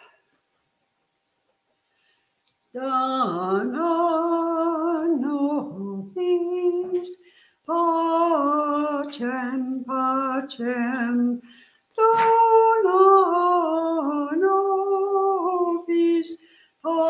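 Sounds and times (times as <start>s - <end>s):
vocal group singing slowly: 2.8s - 17.0s.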